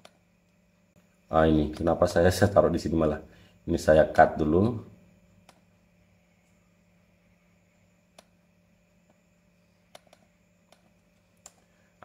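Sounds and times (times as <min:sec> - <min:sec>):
computer mouse clicks: 0:00.0 - 0:00.6, 0:05.4 - 0:05.7, 0:08.1 - 0:08.4, 0:09.9 - 0:11.7.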